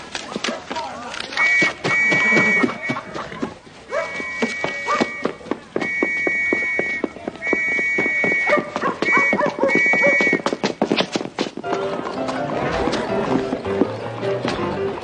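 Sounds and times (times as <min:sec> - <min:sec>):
hooves clip-clopping on street: 0:00.0 - 0:15.0
high whistle blasts: 0:01.4 - 0:03.0, 0:04.1 - 0:10.4
music with held notes: 0:11.7 - 0:15.0.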